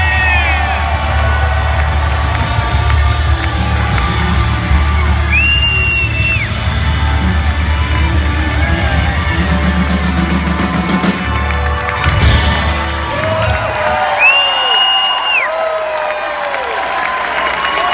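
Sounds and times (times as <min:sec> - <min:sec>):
crowd cheering and whooping: 0:00.0 - 0:17.9
long whistle: 0:04.8 - 0:06.6, 0:14.2 - 0:15.5.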